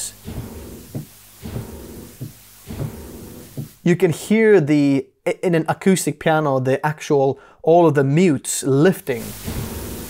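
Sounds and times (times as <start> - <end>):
piano pedal thump: 0.3 - 3.8.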